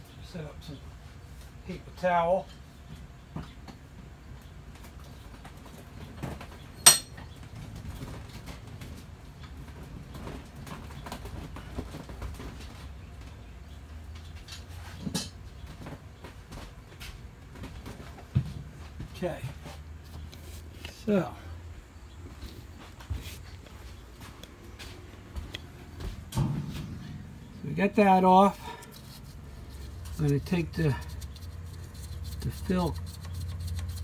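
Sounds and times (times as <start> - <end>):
low hum: 20.3 - 34.0.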